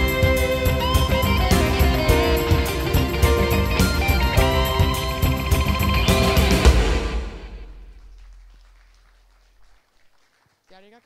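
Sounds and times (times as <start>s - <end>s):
electronic keyboard chord: 0.0s - 7.0s.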